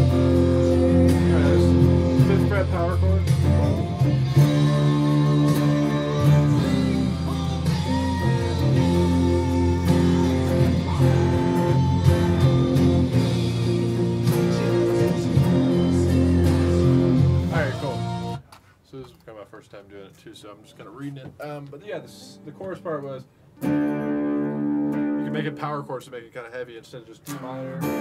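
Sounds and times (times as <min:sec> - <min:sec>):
electric guitar chords: 0:00.0 - 0:18.4, 0:22.0 - 0:25.7, 0:27.2 - 0:28.0.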